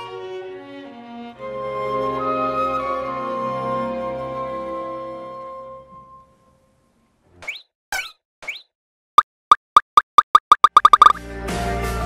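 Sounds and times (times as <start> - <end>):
music: 0.0 - 7.2, 11.0 - 12.0
sharp pops: 8.4 - 11.2
quick rising chirps: 9.8 - 11.2.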